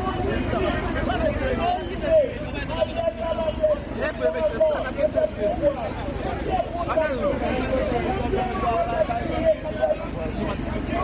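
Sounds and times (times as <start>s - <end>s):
people talking and calling out: 0.0s - 11.0s
vehicle running noise: 0.0s - 11.0s.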